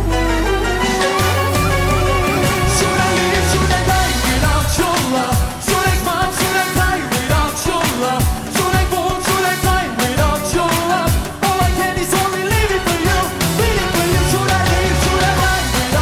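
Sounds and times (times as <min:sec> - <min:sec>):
kick drum dance beat: 0:02.2 - 0:16.0
man singing pop song: 0:02.2 - 0:16.0.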